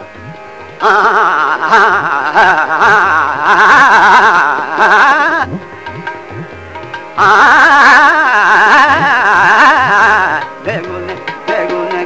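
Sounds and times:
tabla playing: 0.0s - 12.0s
man singing classical vocals: 0.8s - 5.6s, 7.2s - 12.0s.

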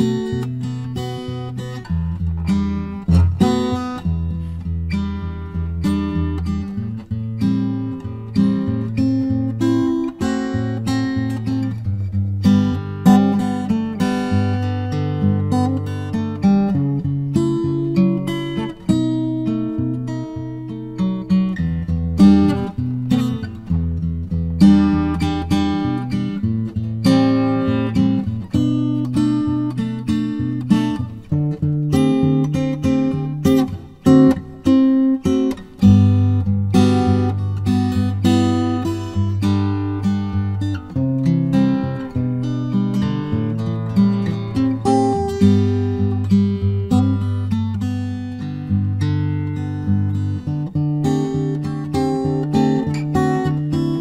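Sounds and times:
solo acoustic guitar: 0.0s - 54.0s.

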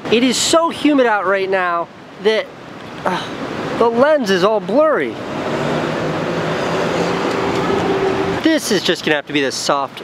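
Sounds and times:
motor traffic noise: 0.0s - 10.0s.

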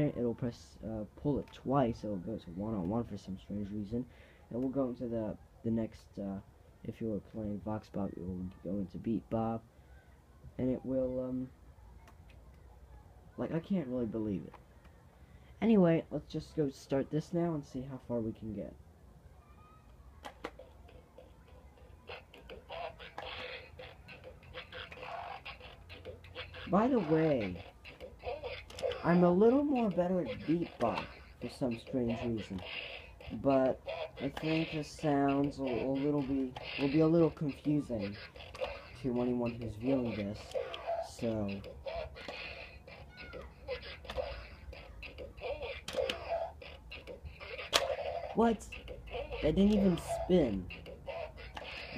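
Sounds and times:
electronic toy sound effects: 20.2s - 51.9s
toy clicks: 20.2s - 51.9s.

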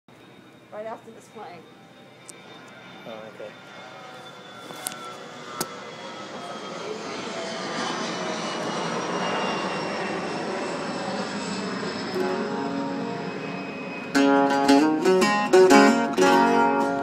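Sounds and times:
airplane passing overhead: 0.1s - 17.0s
whining engine tones: 0.1s - 17.0s.

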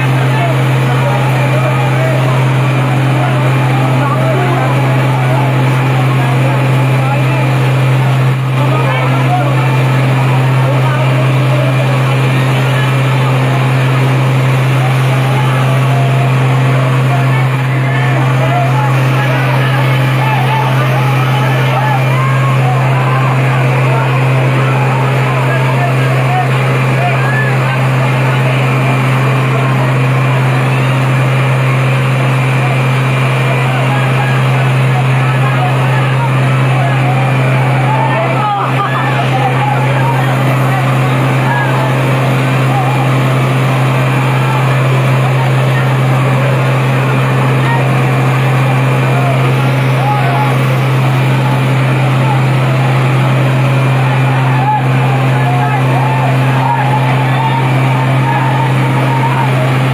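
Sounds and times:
crowd shouting: 0.0s - 59.9s
fire truck engine droning: 0.0s - 59.9s.

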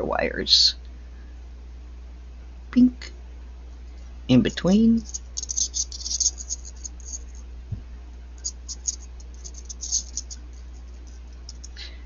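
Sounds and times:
copper wires rubbing and ticking: 4.0s - 7.5s, 8.4s - 11.9s.

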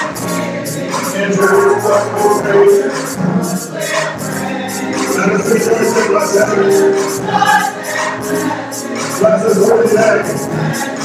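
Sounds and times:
choir singing gospel: 0.0s - 11.0s
steady quick beat: 0.1s - 11.0s.

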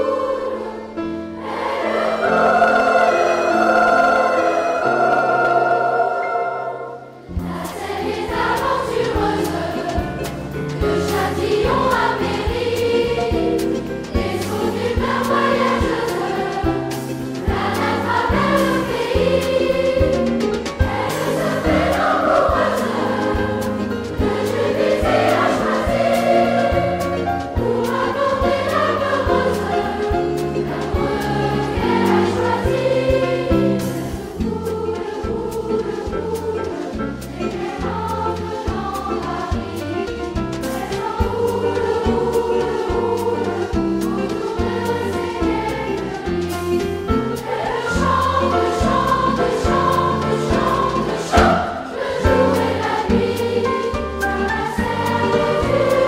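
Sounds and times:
accordion: 0.0s - 56.0s
children's choir singing: 0.0s - 56.0s.

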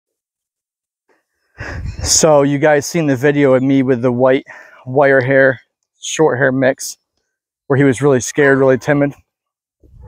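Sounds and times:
man breathing in: 1.2s - 2.1s, 4.5s - 4.8s.

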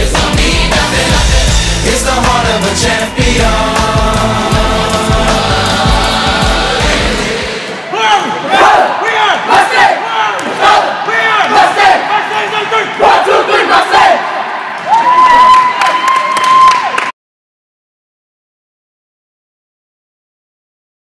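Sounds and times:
group of players shouting: 7.7s - 15.4s.

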